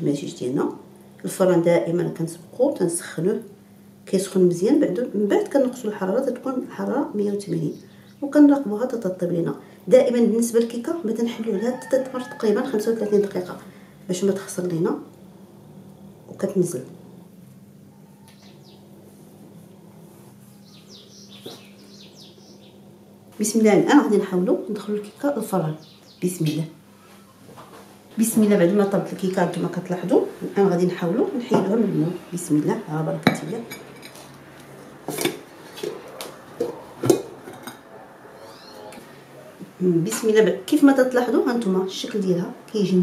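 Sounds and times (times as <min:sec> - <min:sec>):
steady low hum: 0:00.0 - 0:43.0
ceramic plate and mould clinking: 0:33.2 - 0:34.2
high bird chirps: 0:38.4 - 0:38.9.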